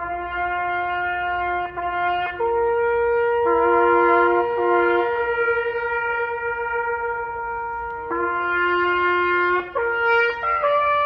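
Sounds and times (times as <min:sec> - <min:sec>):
trumpet slow solo: 0:00.0 - 0:11.0.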